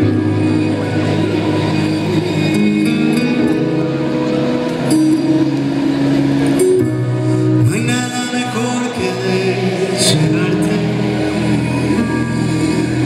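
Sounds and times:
guitar: 0:00.0 - 0:13.0
live band playing a ballad: 0:00.0 - 0:13.0.

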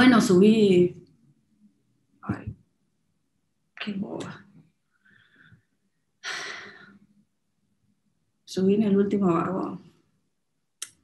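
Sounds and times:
faint breathy sound: 0:04.9 - 0:07.2.

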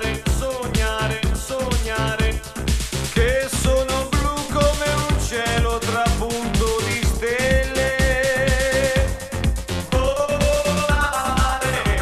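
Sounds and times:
house dance music: 0:00.0 - 0:12.0
kick drum beat: 0:00.0 - 0:12.0
synth chords and melody: 0:00.0 - 0:12.0.

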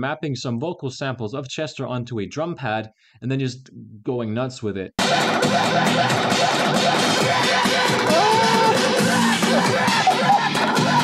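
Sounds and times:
chopped stuttering vocal samples: 0:05.0 - 0:11.0
dense rock electronic music: 0:05.0 - 0:11.0.

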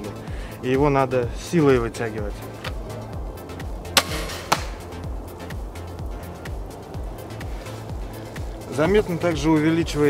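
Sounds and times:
crossbow string snap: 0:03.9 - 0:05.0.

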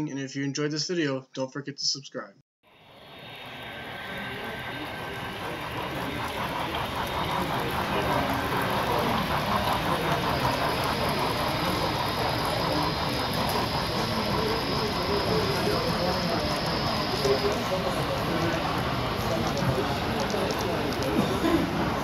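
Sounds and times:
model locomotive steam rush: 0:02.7 - 0:22.0.

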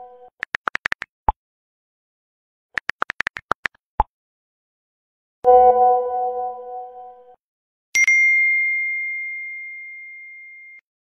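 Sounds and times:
phone notification chime: 0:05.5 - 0:07.0
chord-like tone: 0:05.5 - 0:07.4.

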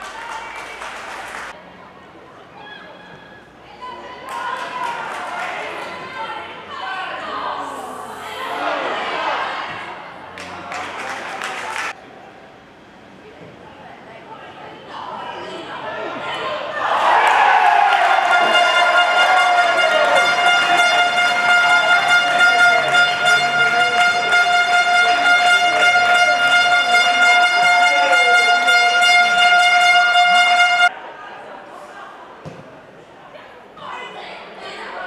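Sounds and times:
people shouting and cheering: 0:15.0 - 0:31.5
air horn blast: 0:17.9 - 0:30.9.

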